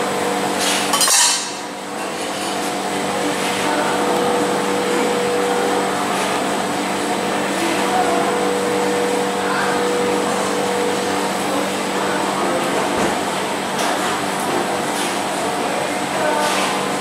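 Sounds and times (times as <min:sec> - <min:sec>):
fan whirring and humming: 0:00.0 - 0:17.0.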